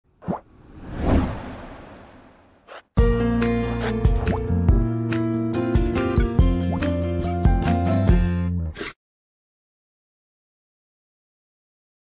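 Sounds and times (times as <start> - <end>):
whoosh: 0.2 - 2.9.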